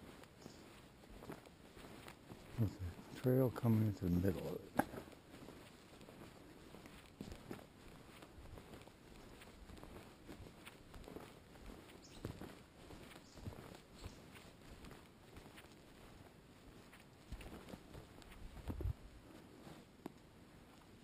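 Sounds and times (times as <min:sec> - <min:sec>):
footsteps on soft forest trail: 0:00.0 - 0:21.0.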